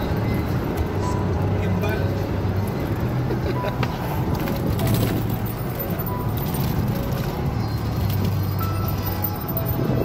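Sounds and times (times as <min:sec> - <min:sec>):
car engine and tyres drone: 0:00.0 - 0:10.0
music playing: 0:00.0 - 0:10.0.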